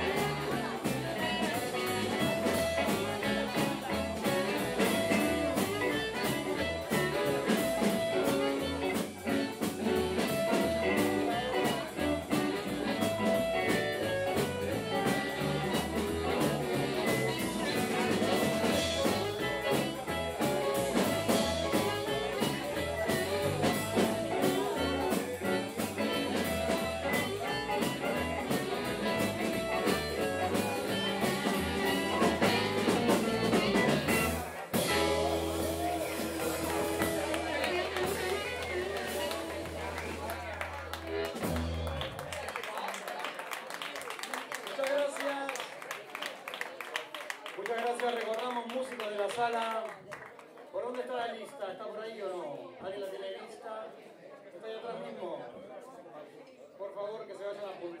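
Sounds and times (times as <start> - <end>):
drum kit: 0.0 - 42.5
bass guitar: 0.0 - 42.6
electric guitar: 0.0 - 42.6.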